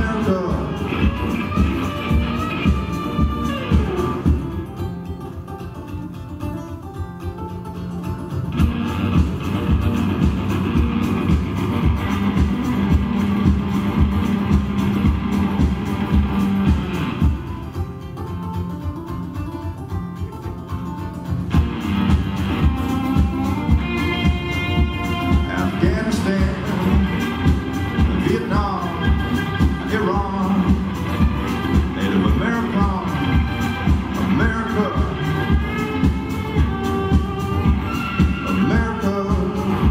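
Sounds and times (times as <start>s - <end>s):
drums keeping a steady beat: 0.0s - 5.0s, 8.5s - 39.9s
acoustic guitar strumming: 0.0s - 39.9s
higher lead notes: 0.0s - 39.9s.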